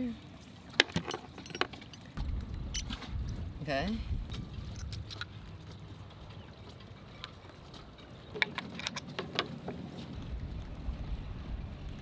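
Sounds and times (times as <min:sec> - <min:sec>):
low rumble of wind and water: 0:00.0 - 0:12.0
small metallic clicks and clinks: 0:00.8 - 0:03.0, 0:04.7 - 0:05.4, 0:07.1 - 0:09.6.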